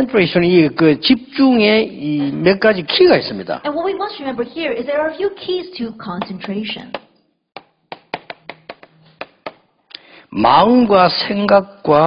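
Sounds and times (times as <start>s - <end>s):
chalk tapping on chalkboard: 6.9s - 9.7s.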